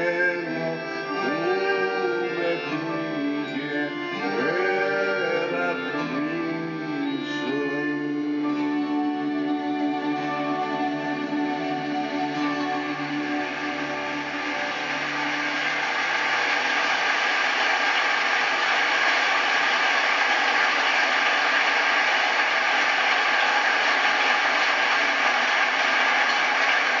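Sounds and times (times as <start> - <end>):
concert audience applauding: 8.6 - 27.0.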